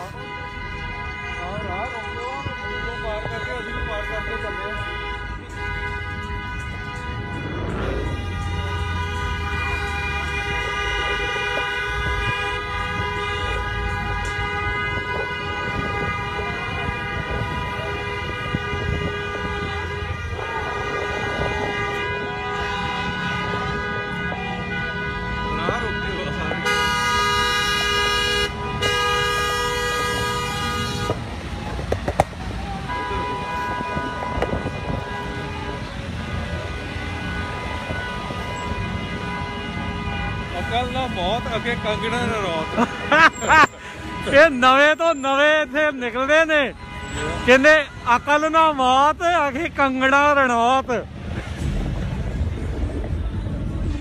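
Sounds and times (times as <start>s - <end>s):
loud held horn: 0.0s - 31.3s
car horns honking: 0.0s - 51.7s
engine and traffic rumble: 0.0s - 54.0s.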